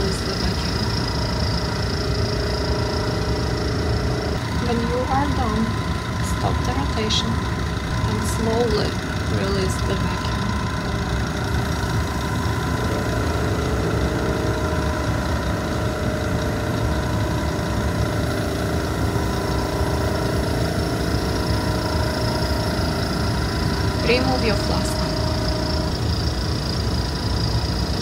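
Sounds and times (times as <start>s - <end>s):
vacuum pump humming: 0.0s - 28.0s.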